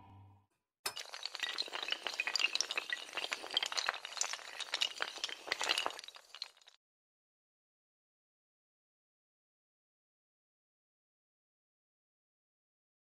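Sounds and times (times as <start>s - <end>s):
tiles toppling clatter: 0.9s - 6.8s.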